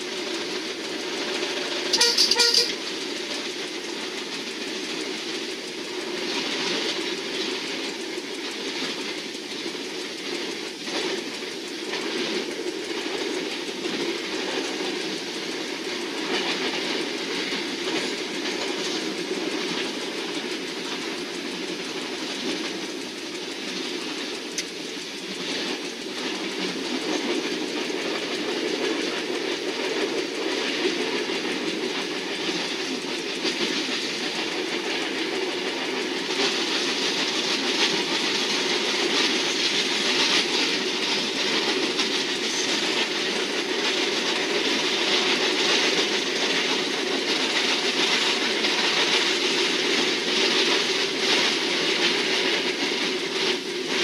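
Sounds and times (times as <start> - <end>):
train rumbling on track: 0.0 - 54.0
train horn blast: 1.9 - 2.8.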